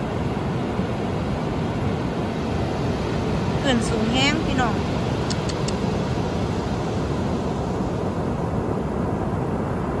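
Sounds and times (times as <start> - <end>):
ocean surf breaking on beach: 0.0 - 10.0.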